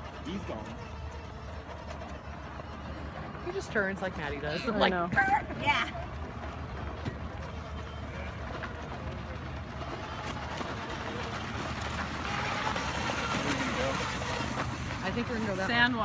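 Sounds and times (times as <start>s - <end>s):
small atv engine running: 0.0s - 16.0s.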